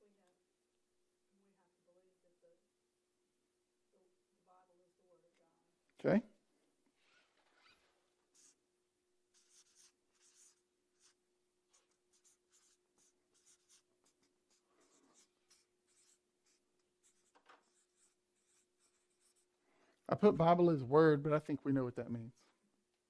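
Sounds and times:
marker writing on paper: 8.3s - 8.6s, 9.3s - 19.5s.

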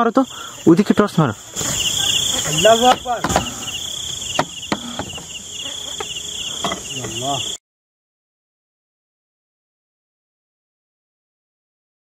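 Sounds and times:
crickets chirping: 0.0s - 7.6s.

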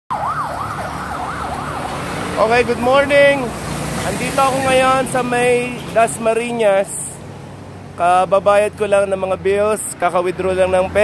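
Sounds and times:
siren wailing: 0.1s - 2.2s
road traffic rumble: 0.1s - 11.0s.

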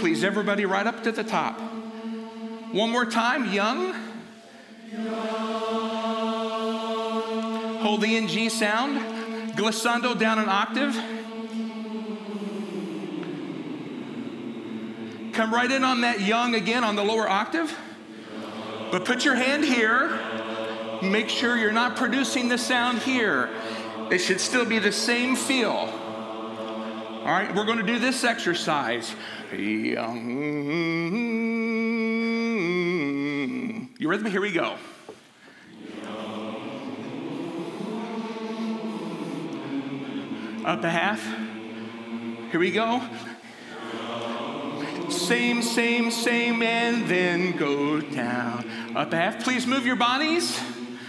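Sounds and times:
male choir humming: 0.0s - 33.9s, 35.4s - 51.0s
group singing sustained pitch: 1.2s - 17.1s, 17.7s - 29.4s, 35.6s - 49.3s, 50.4s - 51.0s.

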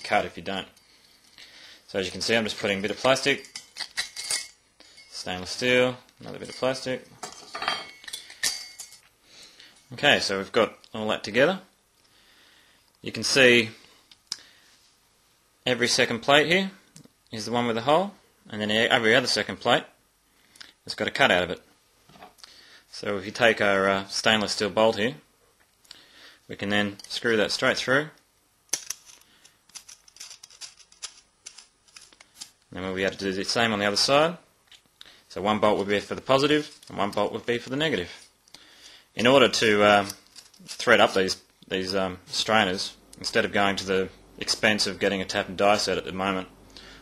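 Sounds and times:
metal strainers clinking: 3.3s - 5.2s, 6.4s - 9.0s
metallic clicks and scrapes: 28.7s - 32.6s, 39.9s - 41.1s.

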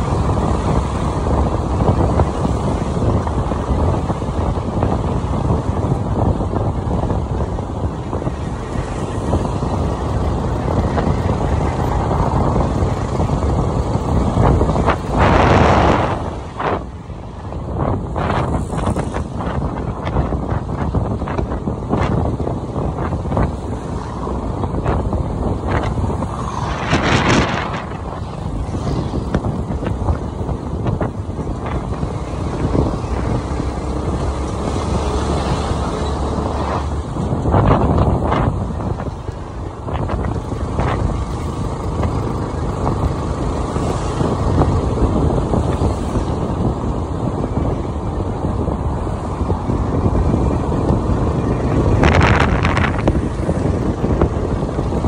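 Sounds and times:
motorbike and road noise: 0.0s - 55.0s
wind buffeting microphone: 0.0s - 55.0s.

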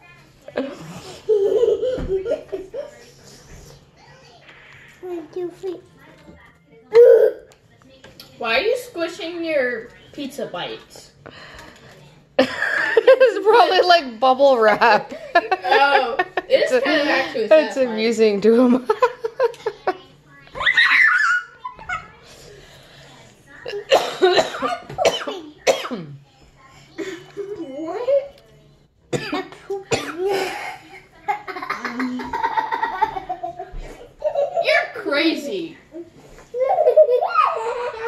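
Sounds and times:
boy coughing or laughing: 23.9s - 26.2s, 29.1s - 33.1s.

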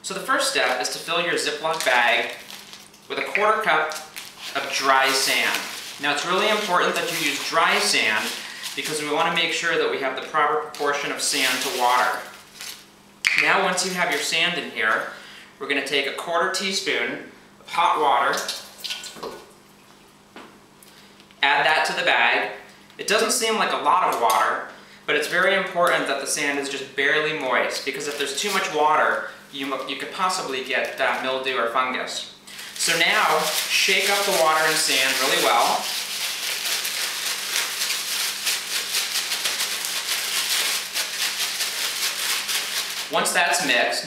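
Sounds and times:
sand rattling in plastic bag: 1.6s - 9.2s, 11.4s - 12.8s, 32.7s - 43.3s.

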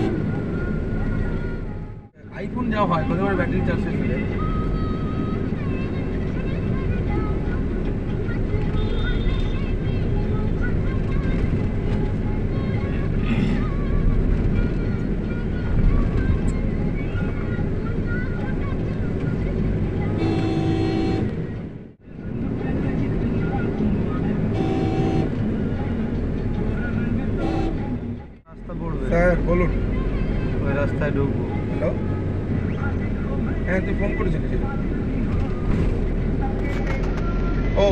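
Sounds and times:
car horn honks: 0.0s - 0.3s, 20.1s - 21.4s, 24.5s - 25.5s, 27.4s - 28.1s
traffic rumble: 0.0s - 37.9s.

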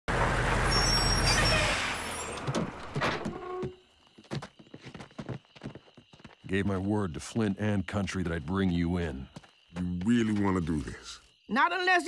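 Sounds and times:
heavy truck engine rumbling: 0.1s - 3.6s
brake squeal: 0.1s - 3.9s
air brakes hissing: 0.6s - 2.3s.

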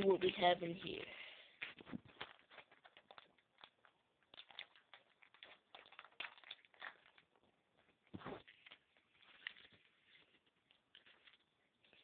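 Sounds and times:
plastic pack crinkling: 0.0s - 12.0s.

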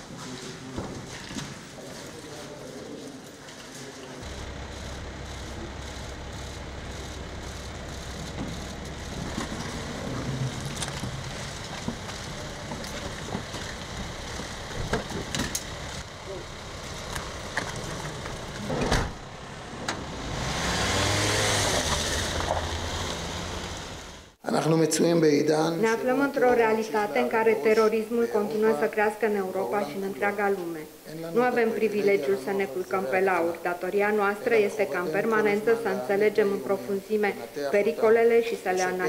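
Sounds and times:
doors shutting: 4.2s - 23.6s
van engines running: 4.2s - 24.4s
vehicle driving past: 15.8s - 24.3s.

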